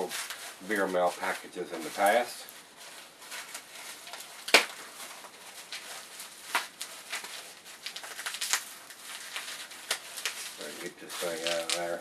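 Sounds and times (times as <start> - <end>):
packing wrap crinkling: 0.0 - 12.0.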